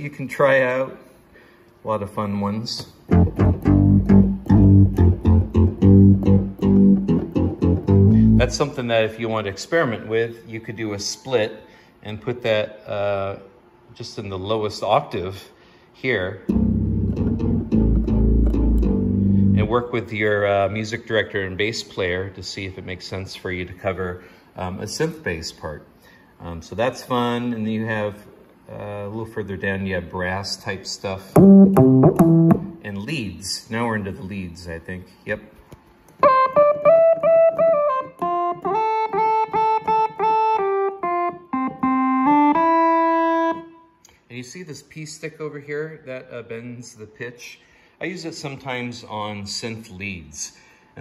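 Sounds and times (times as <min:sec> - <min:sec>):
synth bass notes: 0:03.1 - 0:08.7, 0:16.5 - 0:19.8, 0:31.4 - 0:32.8, 0:36.2 - 0:43.7.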